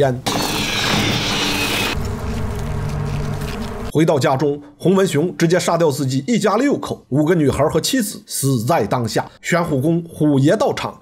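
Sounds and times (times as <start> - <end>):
low buzzing drone: 0.4 - 3.9.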